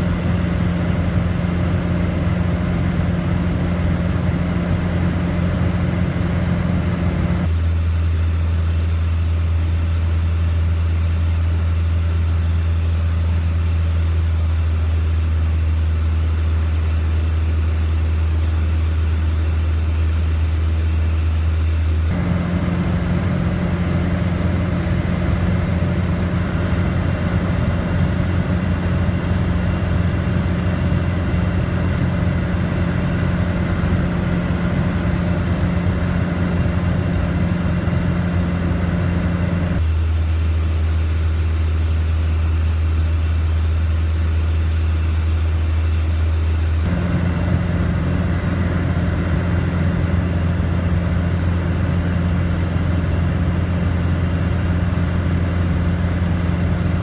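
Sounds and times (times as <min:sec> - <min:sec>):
airplane engine and propeller drone: 0:00.0 - 0:57.0.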